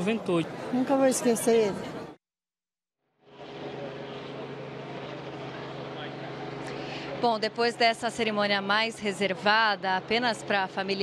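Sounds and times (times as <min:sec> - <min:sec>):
outdoor background noise: 0:00.0 - 0:02.2, 0:03.1 - 0:11.0.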